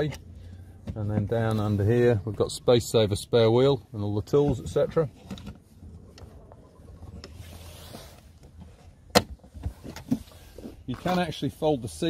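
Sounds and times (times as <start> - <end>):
soft scrape: 6.3 - 8.8.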